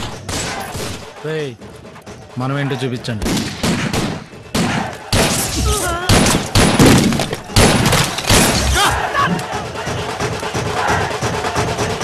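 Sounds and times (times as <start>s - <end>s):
man shouting: 5.6s - 6.2s, 8.7s - 9.4s
rifle shots: 6.1s - 8.8s.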